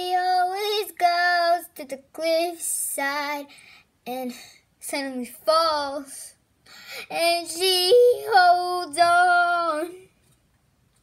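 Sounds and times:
girl singing: 0:00.0 - 0:10.2.

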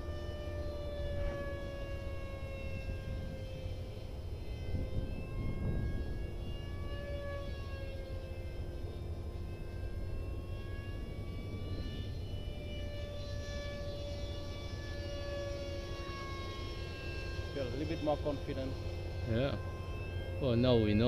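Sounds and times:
model jet whine: 0:00.0 - 0:21.0.

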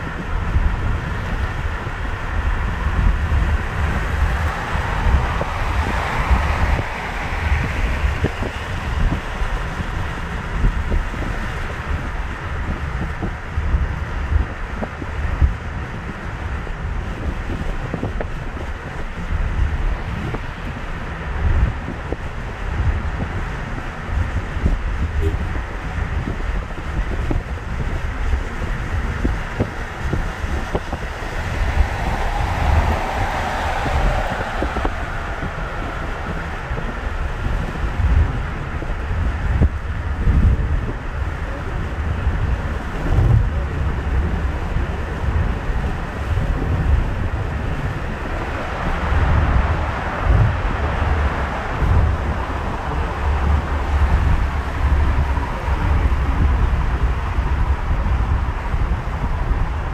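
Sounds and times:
passing traffic: 0:00.0 - 0:59.9
road and tyre noise: 0:00.0 - 0:59.9
wind buffeting microphone: 0:00.0 - 0:59.9.

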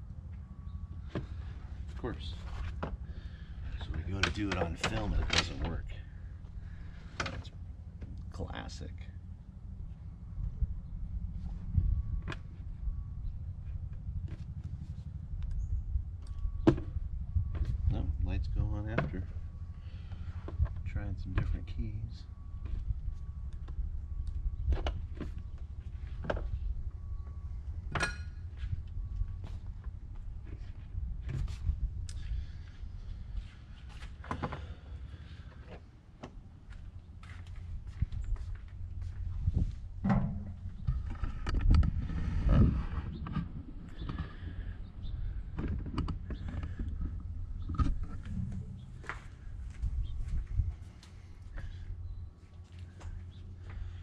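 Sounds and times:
steady low rumble: 0:00.0 - 0:54.0.

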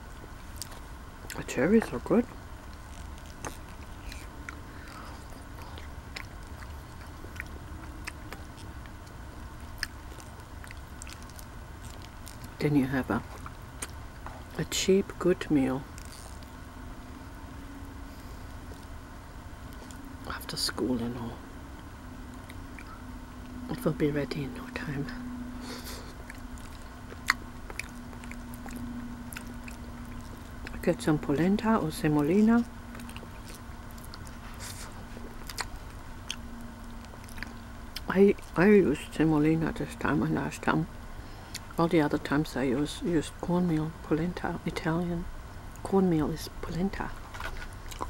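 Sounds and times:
faint low hum: 0:00.0 - 0:48.0
chewing with wet clicks: 0:00.1 - 0:14.6, 0:19.6 - 0:20.2, 0:21.8 - 0:23.6, 0:25.8 - 0:38.7, 0:41.4 - 0:42.9, 0:47.0 - 0:48.0.

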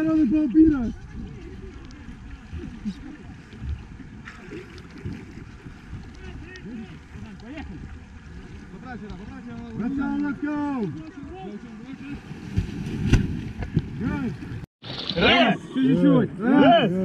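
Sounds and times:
water sloshing: 0:00.0 - 0:15.8.

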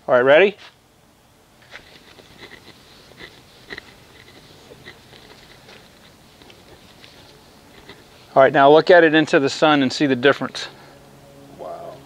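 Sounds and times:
cloth rubbing on car paint: 0:01.6 - 0:10.5.

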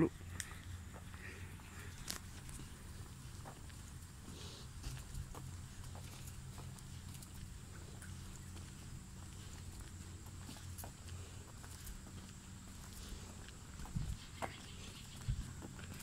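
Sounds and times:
faint footsteps on paved sidewalk: 0:00.0 - 0:16.0
steady low rumble: 0:00.0 - 0:16.0.

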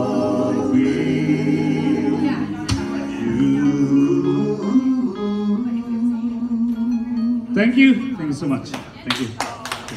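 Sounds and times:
slow ballad with choir-like harmony: 0:00.0 - 0:07.6.

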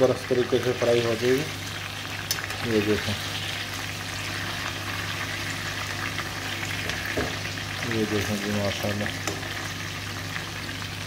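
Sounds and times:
fish sizzling in hot oil: 0:00.0 - 0:11.0.

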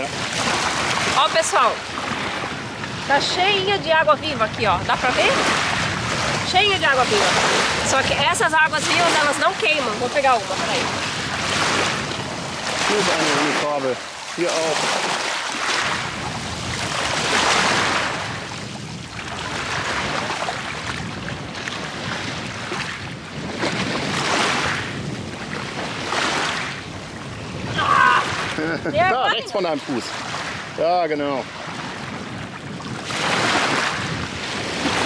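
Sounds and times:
waves washing over pebbles: 0:00.0 - 0:35.0
person speaking: 0:28.9 - 0:29.6.

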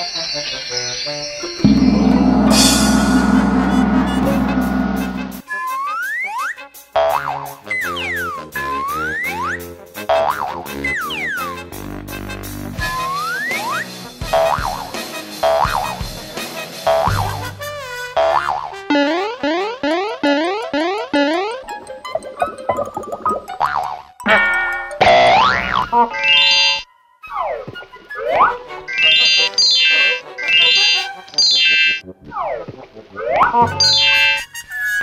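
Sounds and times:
background music: 0:01.3 - 0:05.7, 0:09.6 - 0:35.0
cartoon boing: 0:01.6 - 0:05.4, 0:14.3 - 0:14.8, 0:15.4 - 0:15.9, 0:16.9 - 0:17.4, 0:18.2 - 0:21.5, 0:22.4 - 0:26.8, 0:29.3 - 0:34.4
short twangy notes: 0:01.6 - 0:05.4
tone gliding down in pitch: 0:01.6 - 0:05.4.

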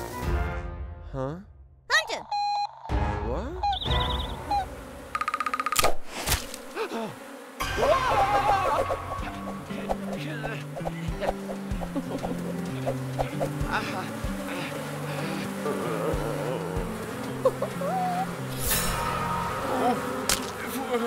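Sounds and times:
cartoon bees buzzing: 0:02.4 - 0:21.0.

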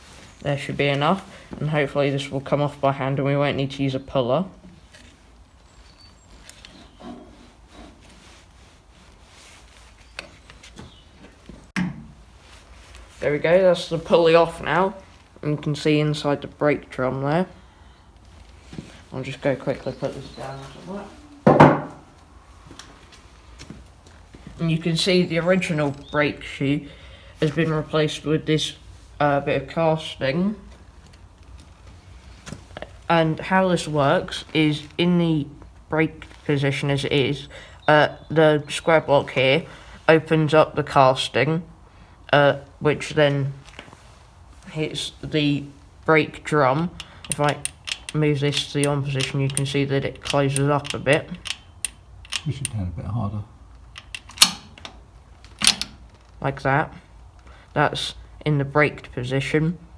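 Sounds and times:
metal scraping and rubbing: 0:06.6 - 0:10.0.

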